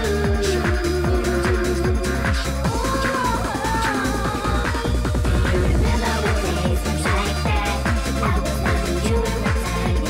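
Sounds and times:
fast hardcore dance music: 0.0s - 10.0s.

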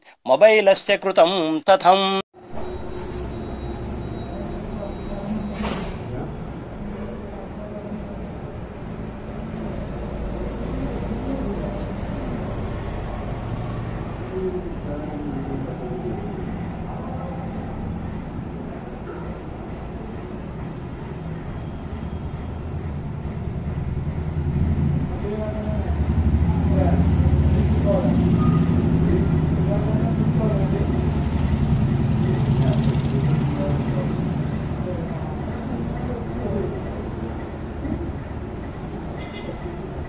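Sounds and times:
vehicle engine rumbling: 2.4s - 40.0s
faint voices: 4.3s - 20.8s.

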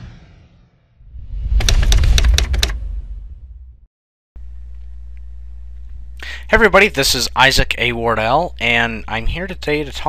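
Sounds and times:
deep rumbling tone: 1.0s - 6.1s.

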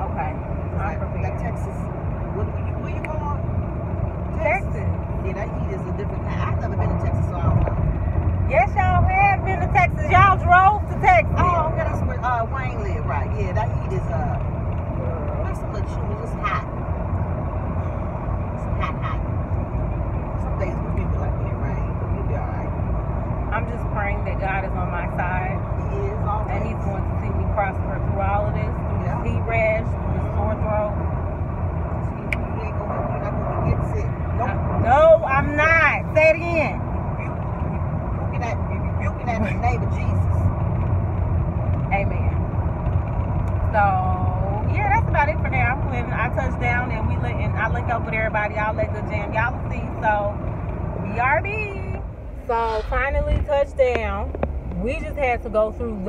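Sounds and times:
car cabin road rumble: 0.0s - 56.0s.

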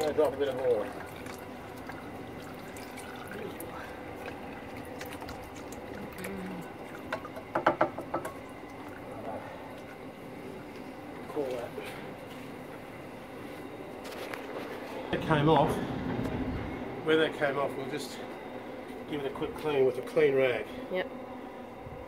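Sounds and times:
oil trickling and dripping: 0.0s - 14.8s
sharp knocks and clicks: 7.1s - 8.4s.

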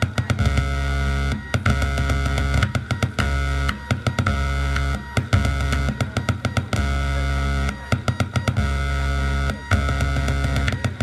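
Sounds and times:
buzzing electronic drone: 0.0s - 11.0s
rapid stuttering clicks: 0.0s - 11.0s.

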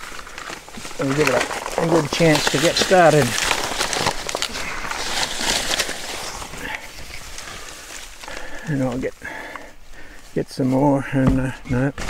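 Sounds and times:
paper crumpling: 0.0s - 9.1s
dry grass and brush rustling: 0.0s - 12.0s.

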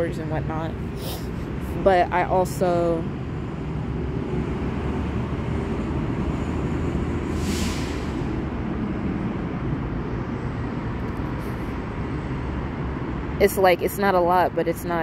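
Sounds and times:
traffic rumble: 0.0s - 15.0s
brief hiss: 7.4s - 8.3s.

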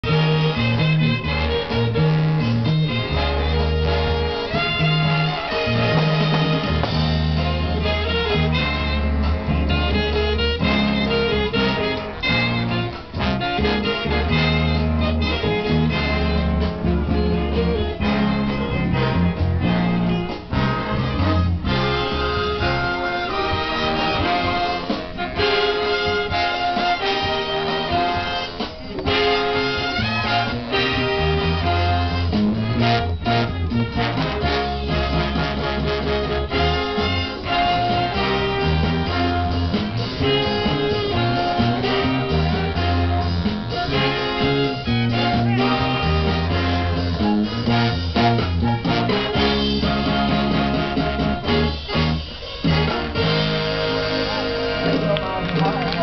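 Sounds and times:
bass line: 0.0s - 56.0s
big band playing jazz: 0.0s - 56.0s
trumpets and trombones: 0.0s - 56.0s.

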